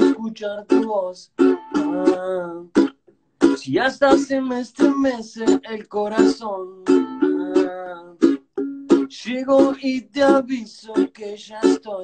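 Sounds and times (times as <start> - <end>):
person singing: 0.0 - 8.4, 9.0 - 12.0
ukulele strumming chords: 0.0 - 12.0.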